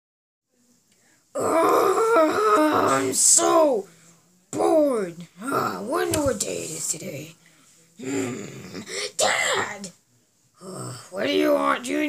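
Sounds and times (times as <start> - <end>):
person groaning: 1.4 - 3.1, 8.0 - 9.1, 10.6 - 11.2.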